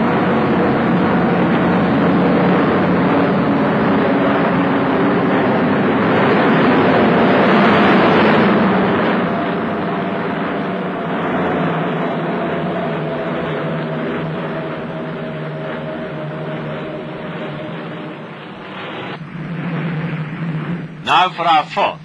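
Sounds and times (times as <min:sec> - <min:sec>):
aircraft engines droning: 0:00.0 - 0:22.0.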